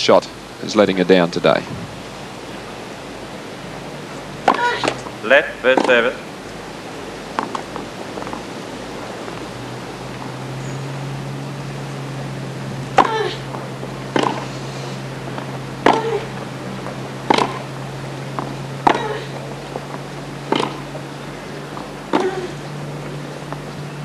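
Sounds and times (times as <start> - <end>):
broadcast hiss: 0.0 - 24.0
low steady hum: 0.0 - 24.0
tennis ball hit by racquets: 4.4 - 6.2, 7.3 - 8.4, 12.9 - 21.1, 21.7 - 23.7.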